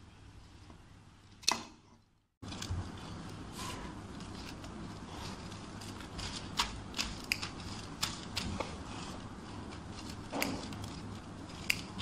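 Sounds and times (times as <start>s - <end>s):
scissors snipping paper: 4.2s - 12.0s.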